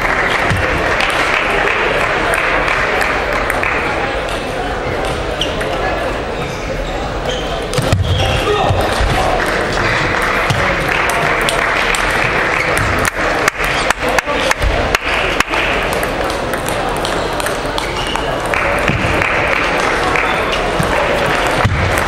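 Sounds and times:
background chatter in a hall: 0.0s - 22.0s.

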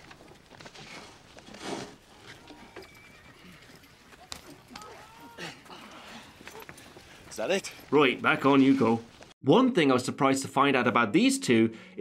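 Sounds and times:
hooves clopping: 0.0s - 9.3s
horse whinnying: 2.0s - 6.8s.

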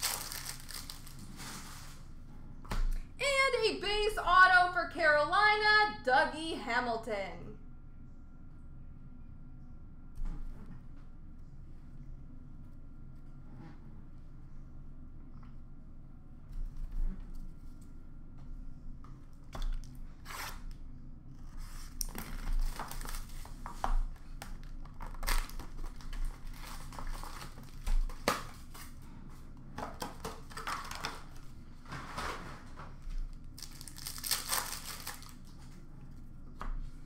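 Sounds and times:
card wrappers tearing and crinkling: 0.0s - 1.8s, 21.9s - 23.6s, 25.0s - 28.9s, 33.5s - 35.6s.

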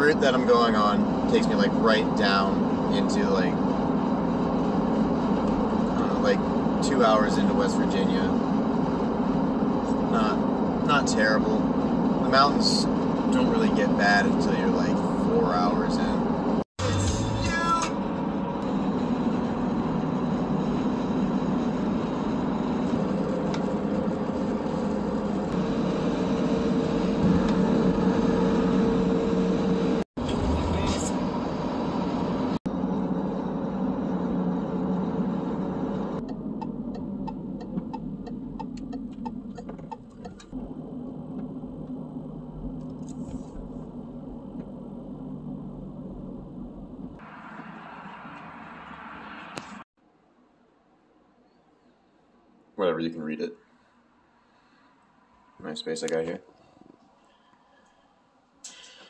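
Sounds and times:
car cabin road and engine noise: 0.0s - 50.0s.

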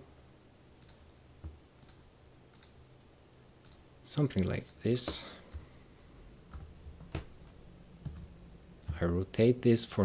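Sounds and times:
low room hum: 0.0s - 10.0s
mouse and keyboard clicks: 0.8s - 2.8s, 3.6s - 3.8s.

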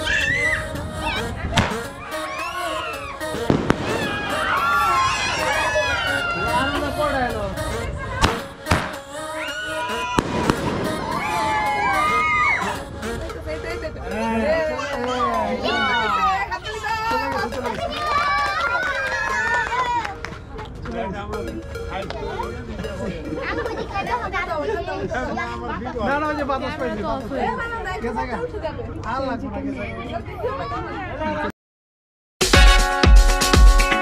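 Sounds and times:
people calling out excitedly: 0.0s - 8.2s, 9.4s - 13.0s, 13.8s - 20.1s
fireworks banging: 1.5s - 2.0s, 3.2s - 5.5s, 8.2s - 9.2s, 10.0s - 12.4s.

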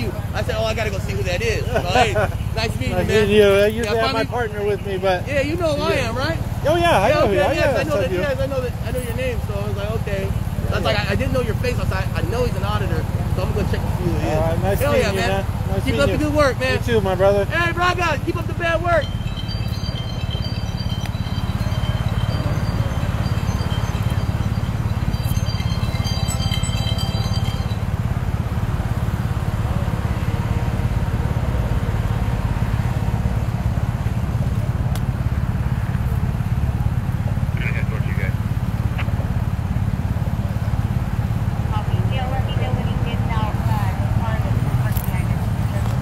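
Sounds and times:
faint voices: 0.0s - 31.5s, 40.2s - 46.0s
street traffic rumble: 0.0s - 46.0s.

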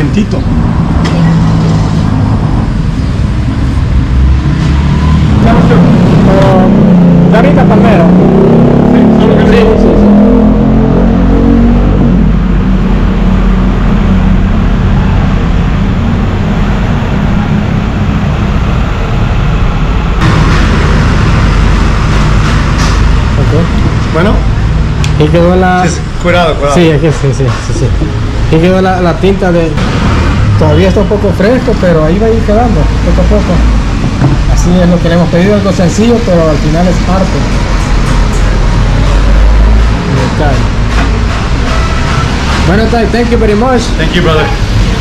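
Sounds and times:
steady low traffic rumble: 0.0s - 45.0s
vehicle engine passing by: 0.0s - 45.0s.

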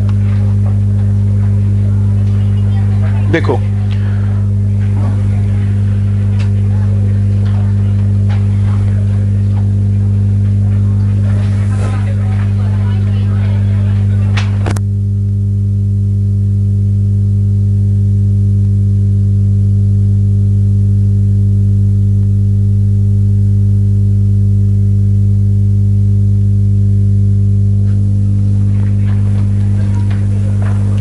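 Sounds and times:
faint noises: 0.0s - 14.8s, 27.5s - 31.0s
electrical mains hum: 0.0s - 31.0s.

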